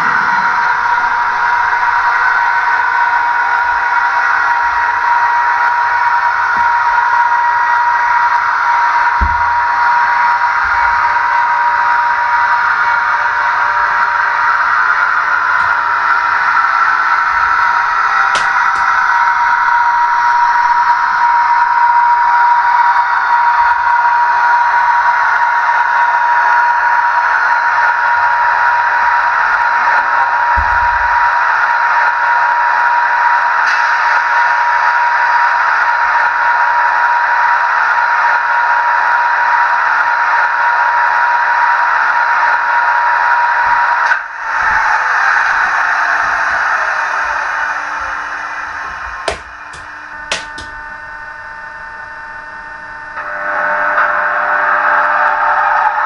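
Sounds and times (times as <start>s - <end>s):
model electric locomotive whine: 0.0s - 56.0s
low thump: 9.2s - 9.8s, 30.6s - 31.2s.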